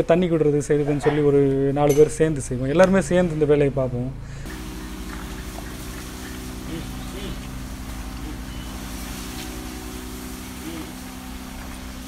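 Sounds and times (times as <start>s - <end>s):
engine droning hum: 0.0s - 12.0s.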